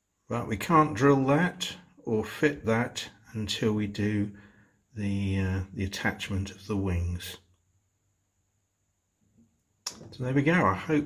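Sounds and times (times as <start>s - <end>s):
sharp click: 9.8s - 10.2s.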